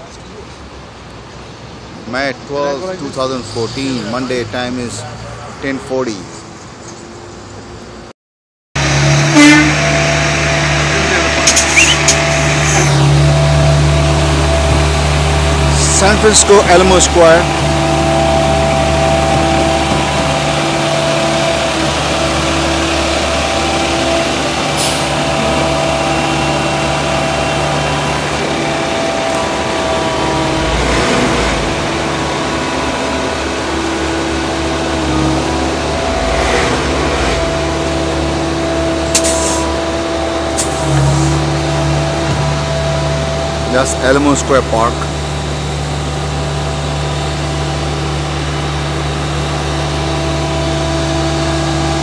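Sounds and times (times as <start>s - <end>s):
heavy truck engine running: 8.8s - 52.0s.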